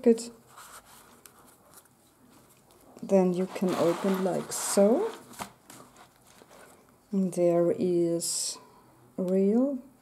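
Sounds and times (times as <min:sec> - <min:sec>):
paper rustling: 0:00.5 - 0:06.8.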